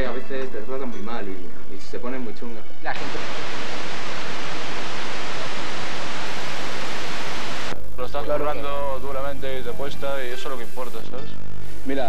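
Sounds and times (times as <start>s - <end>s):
video tape static hiss: 3.0s - 12.0s.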